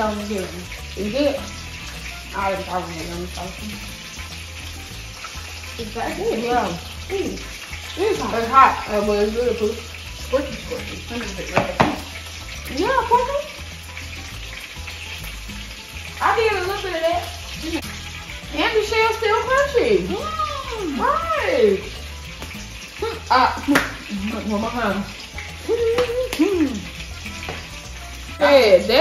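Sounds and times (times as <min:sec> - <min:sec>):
food sizzling in hot oil: 0:00.0 - 0:29.0.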